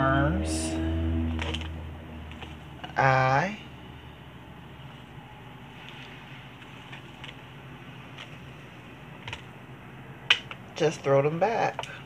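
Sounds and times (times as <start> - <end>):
low hum: 0.0 - 5.7.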